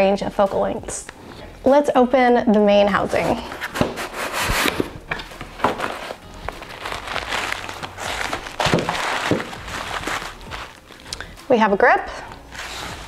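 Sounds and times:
cardboard flaps scraping: 3.0s - 11.0s, 12.4s - 13.0s
plastic wrapping rustling: 3.0s - 11.4s, 12.4s - 13.0s
cardboard knocks: 8.2s - 10.7s.

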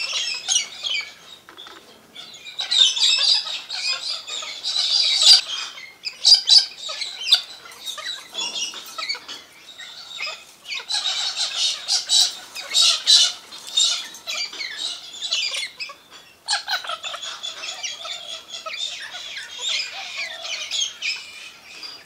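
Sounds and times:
cockatoos screeching: 0.0s - 22.0s.

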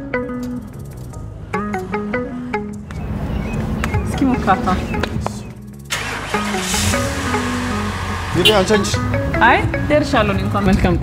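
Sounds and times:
background music: 0.0s - 11.0s
vehicle engine starting and running: 1.7s - 10.9s.

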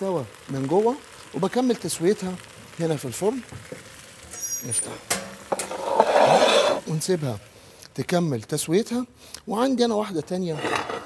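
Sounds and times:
baking dish scraping oven floor: 4.6s - 7.0s, 10.5s - 11.0s.

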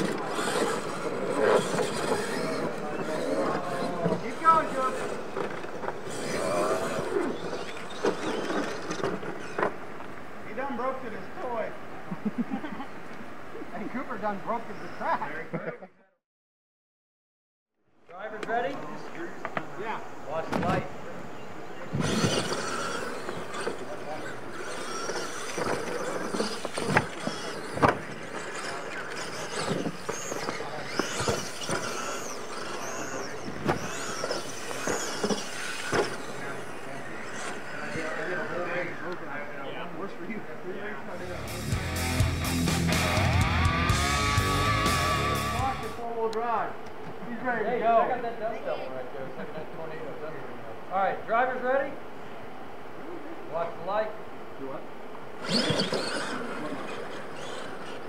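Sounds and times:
electric motors whining: 0.0s - 11.2s, 21.7s - 46.0s, 55.2s - 58.0s
toy trucks landing knocks: 22.0s - 36.6s.

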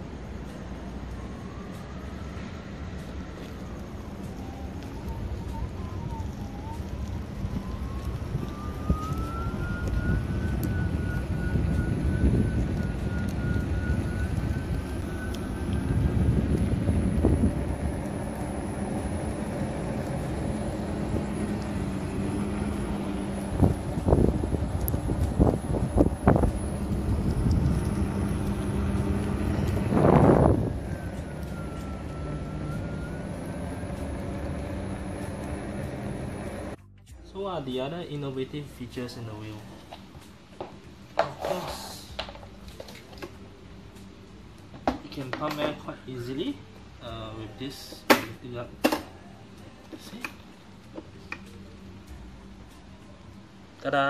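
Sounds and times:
wind noise on microphone: 3.6s - 36.8s
electric motor whine: 4.3s - 36.8s.

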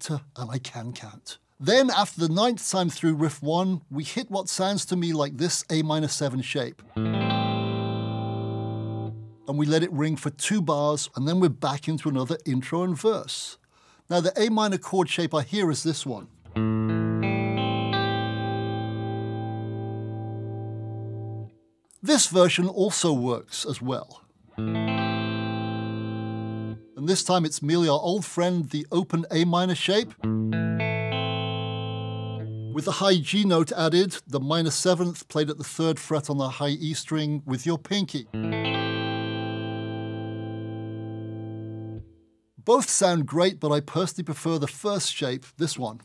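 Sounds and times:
electric guitar chord ringing: 6.9s - 9.4s, 16.5s - 21.5s, 24.6s - 27.0s, 30.2s - 32.8s, 38.3s - 42.2s.

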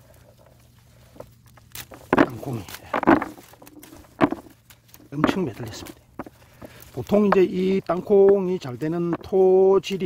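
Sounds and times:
faint plant handling: 0.0s - 10.0s.

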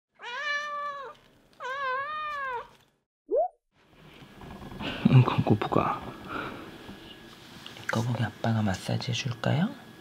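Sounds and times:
cat meowing: 0.2s - 2.8s.

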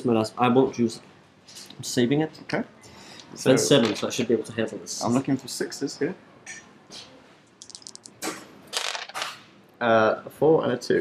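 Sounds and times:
dice clicking: 7.6s - 9.4s
dice rattling: 7.6s - 9.4s.

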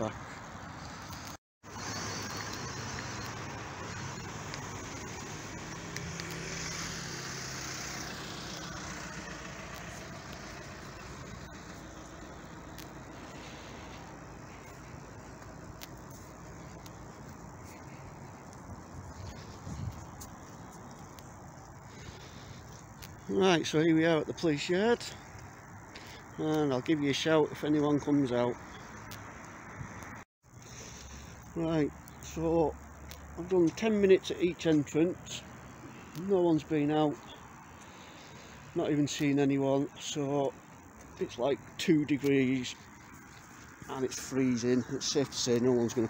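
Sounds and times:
car engines and tyre noise: 0.0s - 46.0s.

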